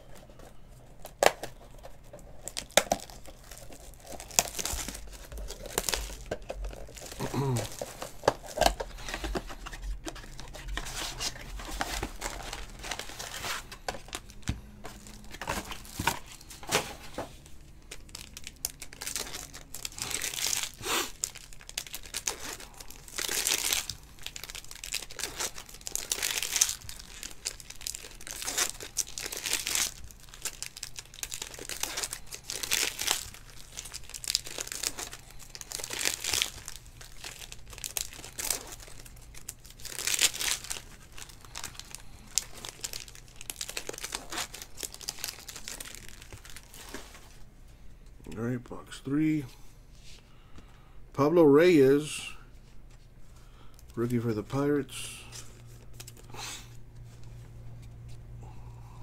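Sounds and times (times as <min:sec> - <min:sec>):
foil wrappers tearing and crumpling: 0:01.0 - 0:47.4, 0:53.8 - 0:56.8.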